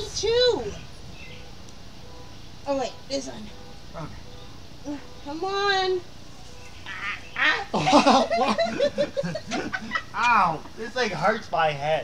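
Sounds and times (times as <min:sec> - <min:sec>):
people laughing and squealing: 0:06.9 - 0:10.6.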